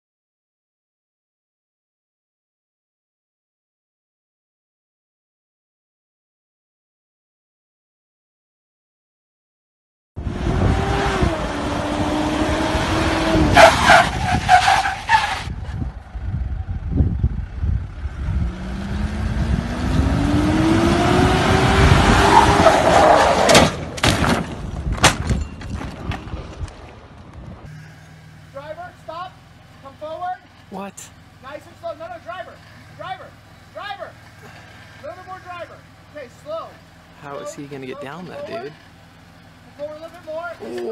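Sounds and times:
car engine revving: 0:10.2 - 0:15.7, 0:17.9 - 0:23.8
voices talking: 0:27.7 - 0:38.9, 0:39.6 - 0:40.9.

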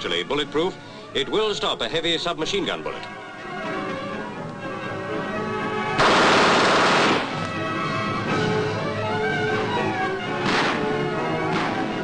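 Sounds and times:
background music: 0:00.0 - 0:12.0
faint gunshot: 0:06.0 - 0:07.4, 0:10.4 - 0:10.8
submachine gun burst: 0:06.0 - 0:07.4.

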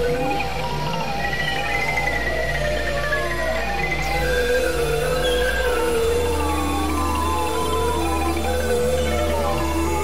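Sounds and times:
experimental electronic music: 0:00.0 - 0:10.0.

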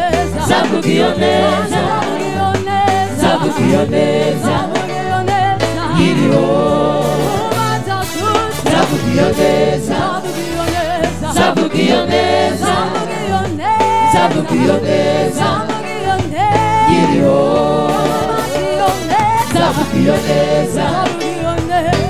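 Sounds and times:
reggae gospel band with singers: 0:00.0 - 0:22.0.

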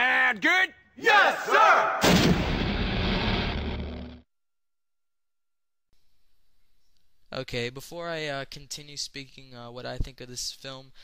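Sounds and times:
cinematic boom with rumbling tail: 0:02.0 - 0:04.2.

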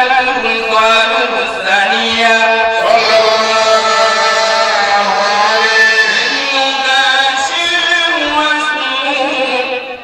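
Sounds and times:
man chanting with held notes: 0:00.0 - 0:10.0.

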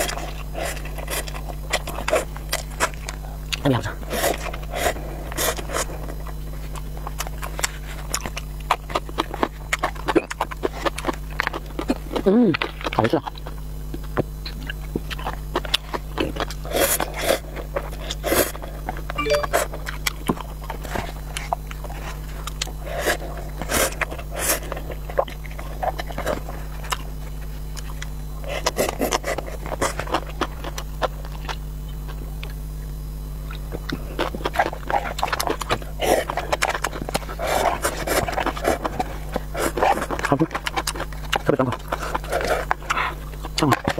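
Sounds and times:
noodles slurped and chewed: 0:20.0 - 0:32.2, 0:33.5 - 0:43.9.

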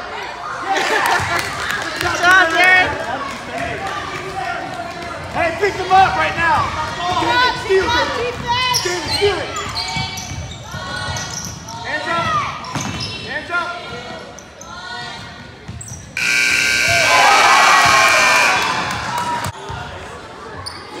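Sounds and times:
scoreboard horn: 0:16.2 - 0:19.3
people shouting: 0:16.3 - 0:19.5.

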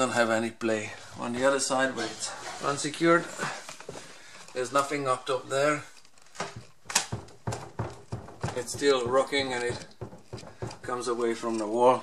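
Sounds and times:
bookcase knocking against wall: 0:06.4 - 0:11.1.

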